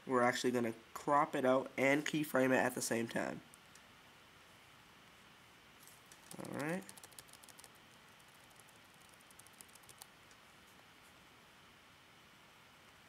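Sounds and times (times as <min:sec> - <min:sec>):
faint computer clicks: 0:06.1 - 0:10.4.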